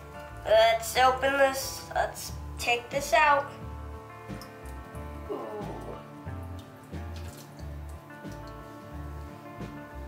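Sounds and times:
water dripping and trickling: 0:01.6 - 0:10.0
background music with bass beat: 0:03.6 - 0:10.0.

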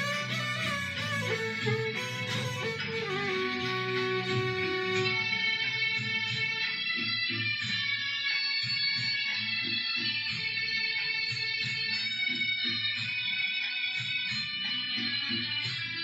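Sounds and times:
violin playing: 0:00.0 - 0:05.3
plucked strings rhythm: 0:00.0 - 0:06.7.

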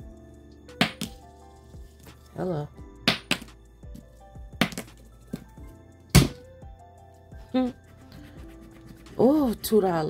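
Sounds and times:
soft background music: 0:00.0 - 0:10.0
coin tapping on a tabletop: 0:03.1 - 0:03.5.

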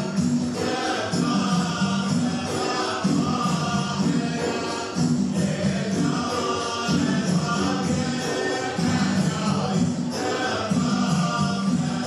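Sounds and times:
men chanting in unison: 0:00.0 - 0:12.0
percussion: 0:00.0 - 0:12.0.

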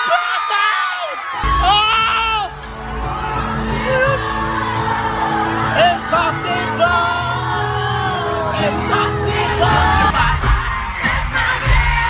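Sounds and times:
crowd screaming and cheering: 0:00.0 - 0:12.0
live concert music with heavy bass: 0:00.0 - 0:12.0.

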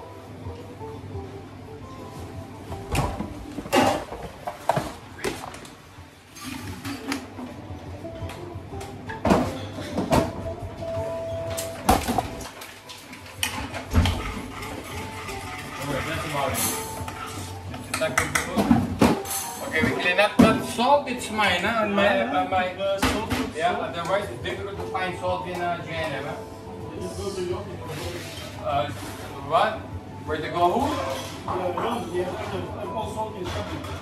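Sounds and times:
music: 0:00.0 - 0:34.0
dishes and trays clinking: 0:03.2 - 0:05.6, 0:13.4 - 0:20.8, 0:33.4 - 0:34.0.

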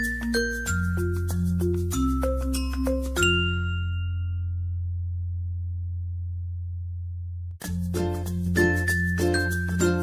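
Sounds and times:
held low bass note: 0:03.9 - 0:07.6.

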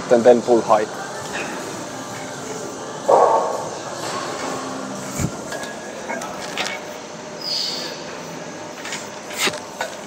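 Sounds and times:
gym room noise: 0:00.0 - 0:10.0.

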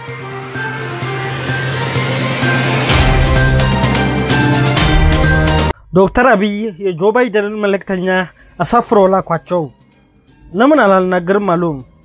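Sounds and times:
musical hit: 0:00.0 - 0:05.7
synth theme music: 0:00.0 - 0:06.4
rising whoosh: 0:00.4 - 0:05.4.

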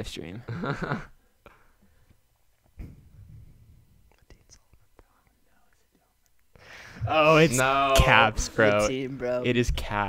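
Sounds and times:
faint whispering voices: 0:04.0 - 0:06.3.

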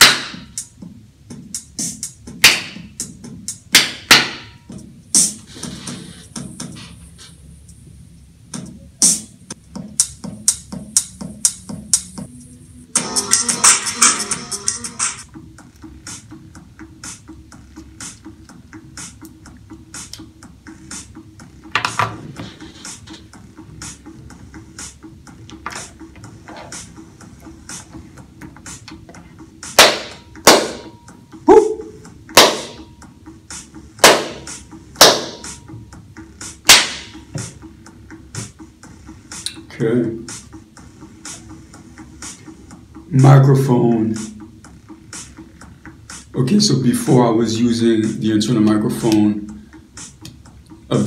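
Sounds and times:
loud sharp cracks: 0:29.8 - 0:30.9, 0:32.4 - 0:32.8, 0:34.0 - 0:35.4, 0:36.7 - 0:37.2.

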